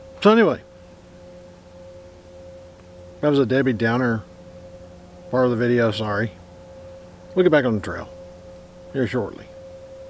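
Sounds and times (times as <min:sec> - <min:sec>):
distant engine hum: 0:00.0 - 0:10.0.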